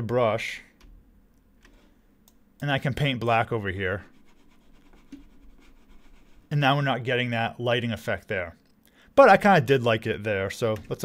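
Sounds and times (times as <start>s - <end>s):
computer mouse scratching: 4.0s - 6.5s.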